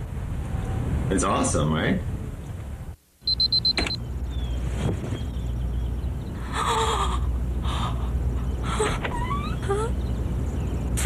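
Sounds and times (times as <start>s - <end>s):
steady low hum: 0.0s - 11.0s
rapid high electronic beeping: 3.2s - 4.0s.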